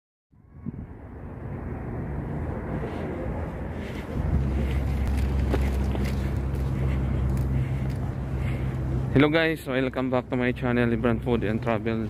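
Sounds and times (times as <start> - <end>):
low outdoor rumble: 0.4 - 12.0.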